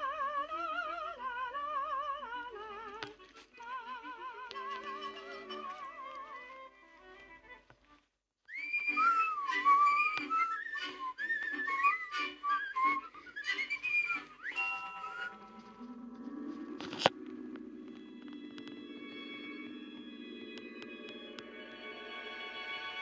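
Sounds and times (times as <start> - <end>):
whistled tune: 0.2 - 6.6, 8.5 - 23.0
soft sustained music tones: 8.8 - 23.0.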